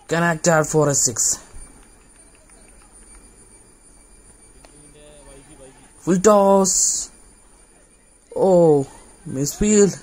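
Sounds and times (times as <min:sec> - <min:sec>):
faint open-air background noise: 0:00.0 - 0:10.0.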